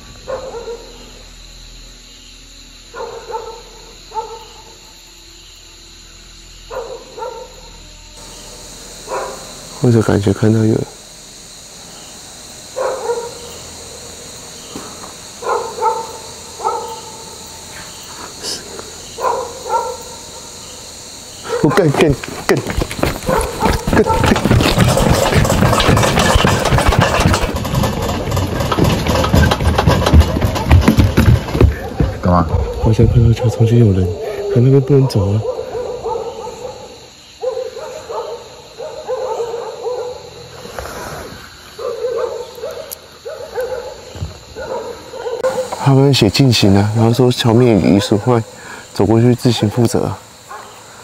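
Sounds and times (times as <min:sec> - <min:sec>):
high insect drone: 0:00.0 - 0:51.0
dog barking: 0:00.2 - 0:01.1, 0:02.9 - 0:04.7, 0:06.7 - 0:07.7, 0:09.0 - 0:09.5, 0:12.8 - 0:13.6, 0:15.4 - 0:17.4, 0:19.1 - 0:20.2, 0:21.4 - 0:22.0, 0:23.1 - 0:25.2, 0:31.8 - 0:40.4, 0:41.8 - 0:45.8, 0:47.8 - 0:48.5, 0:50.5 - 0:50.8
loud rumbling noise: 0:22.4 - 0:30.7.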